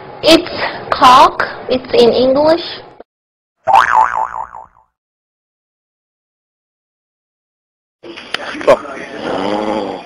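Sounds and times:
cartoon boing sound effect: 3.7 - 4.9.

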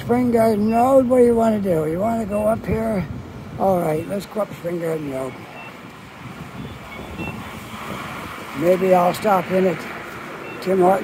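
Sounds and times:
street traffic rush: 0.0 - 11.0.

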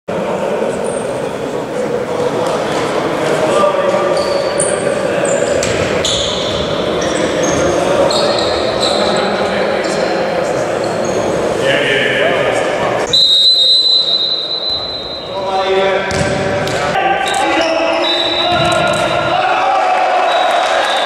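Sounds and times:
shoe squeaks on floor: 4.0 - 10.0, 10.8 - 11.4, 13.1 - 15.6
indistinct voices: 14.0 - 21.0
ball bouncing on court: 16.1 - 17.0, 18.4 - 19.2.

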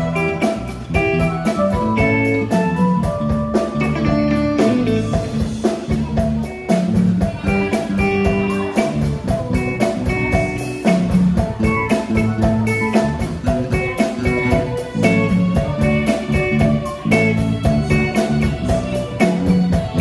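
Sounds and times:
drum kit beat: 0.0 - 20.0
guitar: 0.0 - 20.0.

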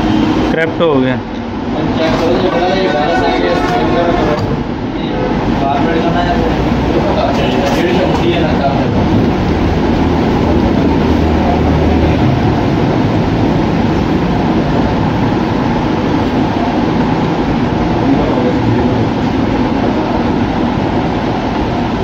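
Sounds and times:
low continuous rumbling: 0.0 - 22.0.

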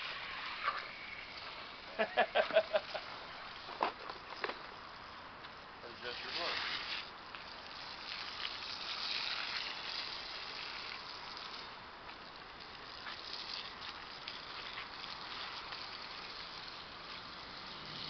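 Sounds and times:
water spraying from hose: 0.0 - 18.0.

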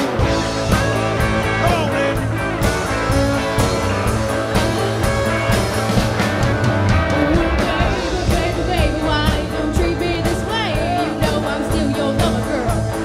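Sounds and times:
drum beat: 0.0 - 13.0
electric guitars: 0.0 - 13.0.

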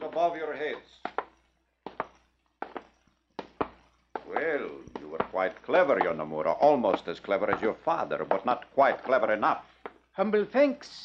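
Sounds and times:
footsteps climbing stairs: 0.0 - 10.1.

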